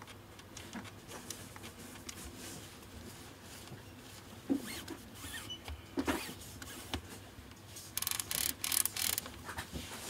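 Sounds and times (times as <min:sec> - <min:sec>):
lens zoom ring rubbing squeaks: 0:04.7 - 0:05.6, 0:08.0 - 0:09.2.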